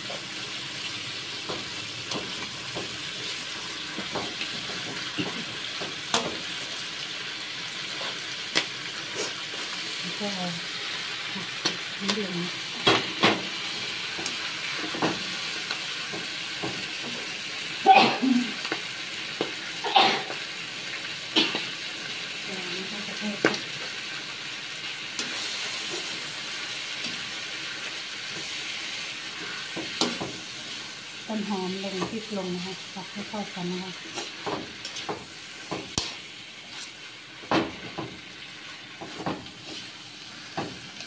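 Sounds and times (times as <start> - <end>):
food sizzling in a frying pan: 0.0 - 41.0.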